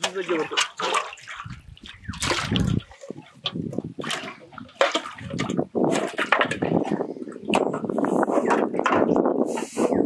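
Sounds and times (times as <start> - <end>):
water splashing in a plastic basin: 0.0 - 9.2.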